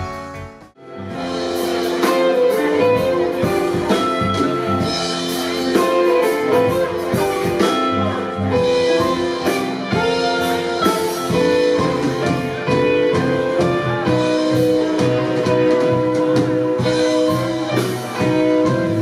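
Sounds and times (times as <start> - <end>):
drum kit: 0.0 - 19.0
electric guitar lead: 0.0 - 19.0.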